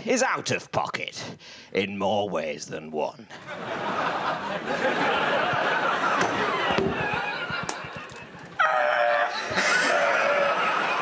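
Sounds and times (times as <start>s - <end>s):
men laughing hysterically: 3.4s - 11.0s.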